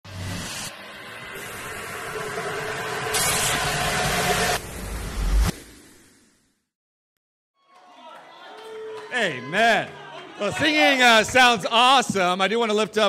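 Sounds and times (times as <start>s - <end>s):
noisy whoosh: 0.0s - 6.7s.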